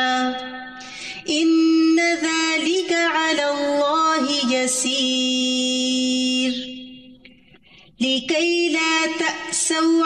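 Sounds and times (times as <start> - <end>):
melodic recitation: 0.0 - 7.2, 8.0 - 10.0.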